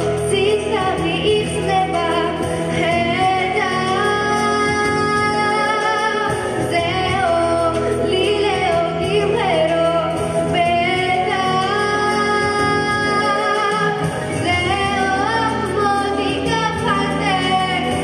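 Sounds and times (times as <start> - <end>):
girl singing into microphone: 0.0 - 18.0.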